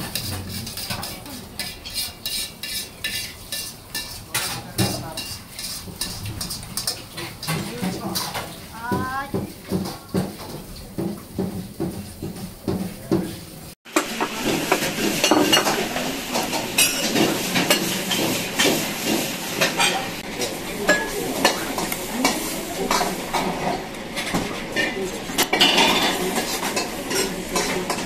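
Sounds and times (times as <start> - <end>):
dishes and utensils clinking: 0.0 - 28.0
hiss of cooking: 0.0 - 28.0.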